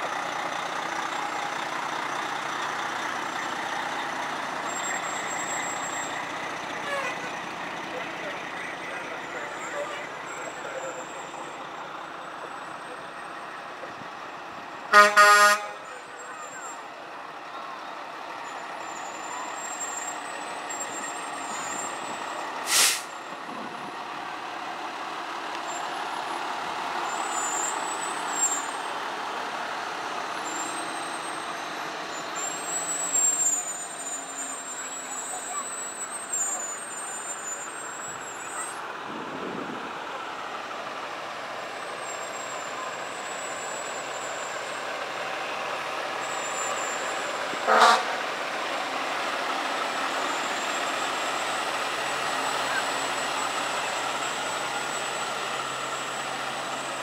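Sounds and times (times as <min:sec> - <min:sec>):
diesel engine running: 0:00.0 - 0:57.0
fire truck horn blast: 0:06.8 - 0:07.4, 0:14.9 - 0:16.1, 0:47.6 - 0:48.3
short sharp noise: 0:22.7 - 0:23.2.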